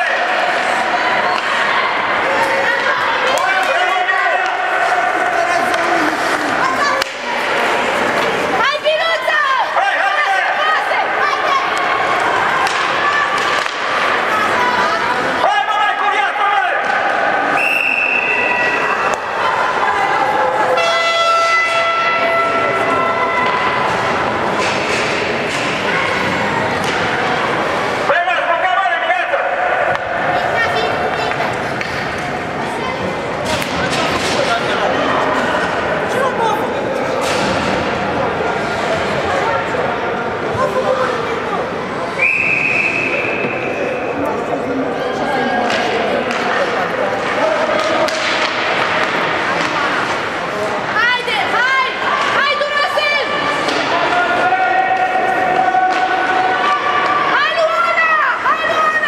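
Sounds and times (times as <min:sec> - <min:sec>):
sticks and puck banging boards: 0:02.4 - 0:09.0, 0:11.4 - 0:14.7, 0:20.7 - 0:28.1, 0:29.8 - 0:32.5, 0:33.3 - 0:35.8, 0:37.1 - 0:39.1, 0:45.6 - 0:50.4, 0:51.9 - 0:59.0
referee's whistle: 0:17.6 - 0:19.0, 0:42.2 - 0:44.0.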